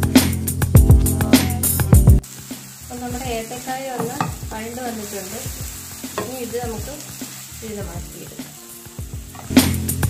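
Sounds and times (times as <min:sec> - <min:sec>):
background music: 0:00.0 - 0:10.0
banana sizzling in a pan: 0:00.0 - 0:10.0
spatula scraping a pan: 0:09.3 - 0:09.7.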